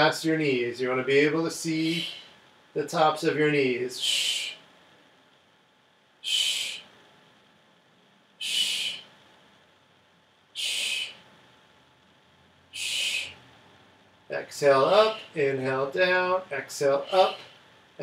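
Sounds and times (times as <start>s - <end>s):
sharp hissed exhalations: 8.4s - 9.1s, 10.6s - 11.2s, 12.8s - 13.4s.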